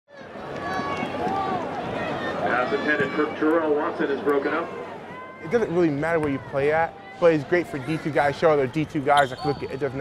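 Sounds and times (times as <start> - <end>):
people talking and calling out: 0.1 - 10.0.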